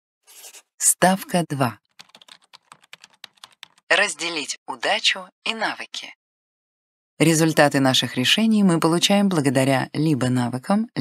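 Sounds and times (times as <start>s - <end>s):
faint rapid clicks: 1.9s - 3.8s.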